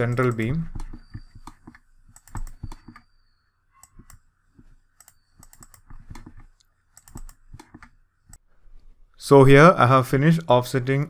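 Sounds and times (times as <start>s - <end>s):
mouse and keyboard clicks: 0.0s - 3.1s, 3.8s - 8.4s.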